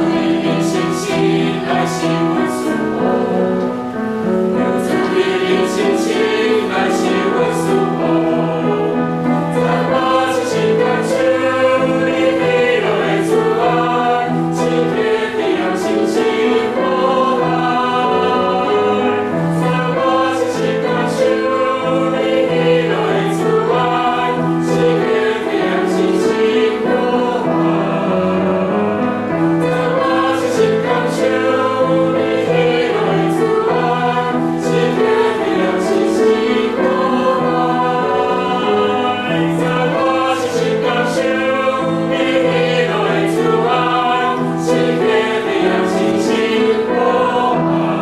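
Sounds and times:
mixed choir singing a hymn: 0.0 - 48.0.

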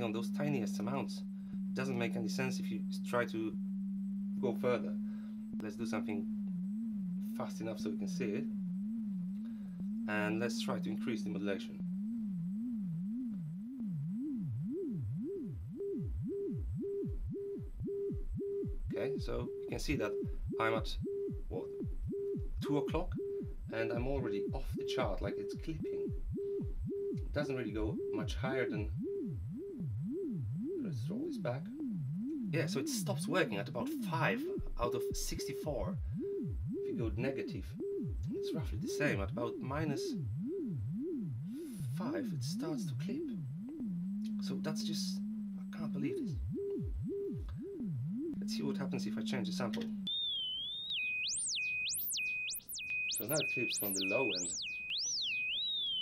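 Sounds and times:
test tone sweeping up and down: 0.0 - 56.0.

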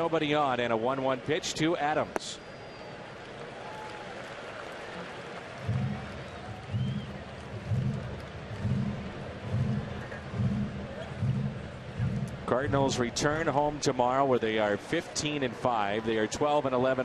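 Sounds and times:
ballpark crowd murmur: 0.0 - 17.0
low drum-like beat: 5.6 - 16.0.

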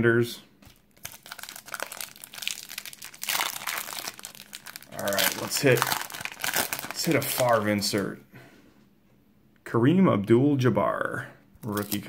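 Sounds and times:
wrapper tearing open: 0.6 - 8.0, 11.6 - 12.0
foil wrapper crinkling: 0.6 - 8.1, 11.6 - 12.0.

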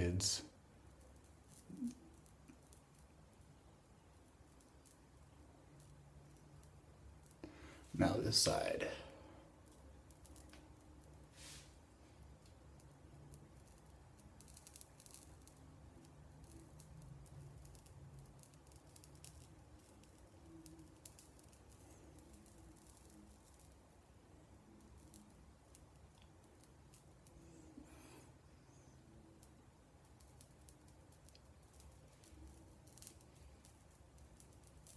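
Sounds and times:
hair singeing crackle: 0.0 - 34.9
low room hum: 0.0 - 34.9.

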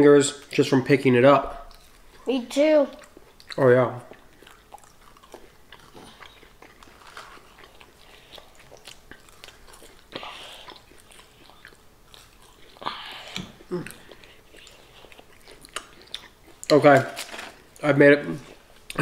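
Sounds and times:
people chewing fries: 0.3 - 19.0.

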